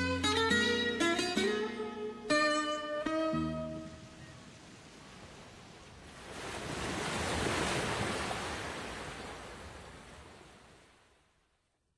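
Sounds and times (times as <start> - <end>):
sea wave washing in: 3.8 - 10.9.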